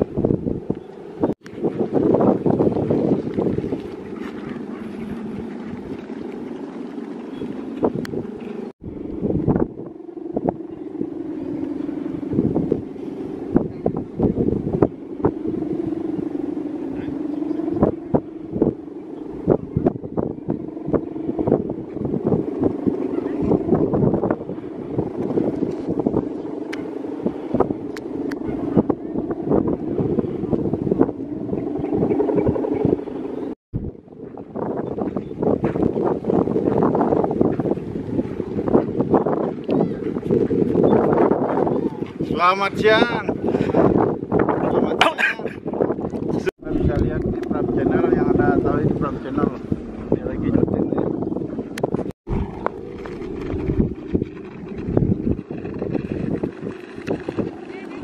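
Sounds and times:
droning hum of kite bow: 0.0 - 58.0
wind buffeting microphone: 0.0 - 58.0.

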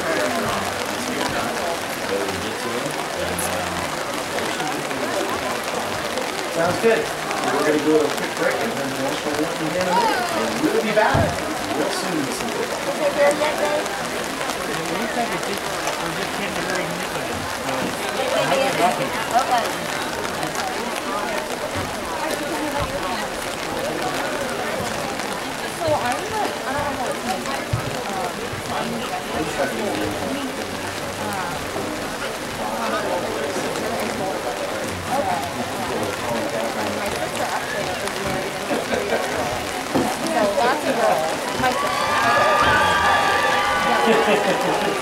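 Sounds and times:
falling rain hiss: 0.0 - 45.0
overlapping voices: 0.0 - 45.0.

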